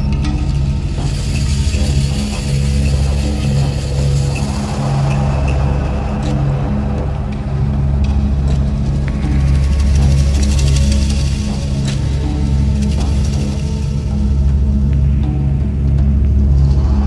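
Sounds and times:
high hiss-like layer: 0.0 - 14.3
low drone meditation music: 0.0 - 17.0.

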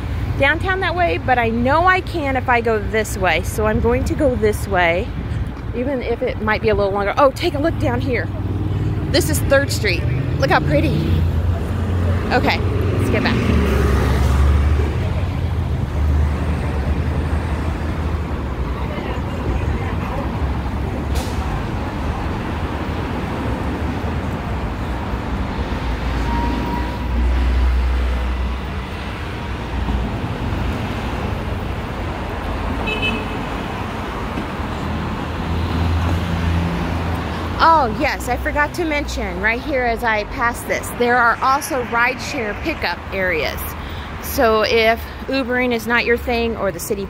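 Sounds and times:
road noise from passing vehicles: 0.0 - 47.0.

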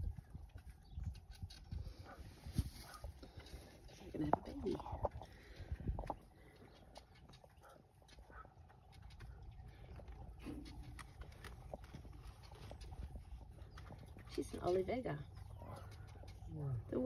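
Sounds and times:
faint clicks and rustles in straw: 0.0 - 17.0
steady low rumble: 0.0 - 17.0.

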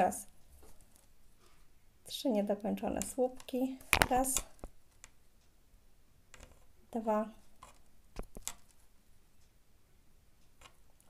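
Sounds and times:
soft thread rustle: 0.0 - 1.8, 6.3 - 9.0.

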